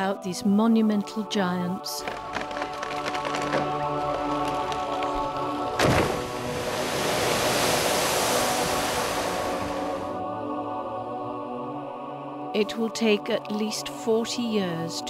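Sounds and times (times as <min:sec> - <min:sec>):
slow background music: 0:00.0 - 0:15.0
water falling onto surface: 0:02.0 - 0:10.0
heavy impact in water: 0:05.6 - 0:10.1.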